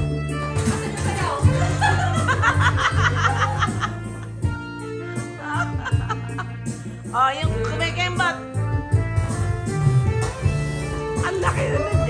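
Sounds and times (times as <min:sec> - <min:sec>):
backing music: 0:00.0 - 0:12.0
person laughing: 0:01.2 - 0:04.4, 0:05.4 - 0:07.0.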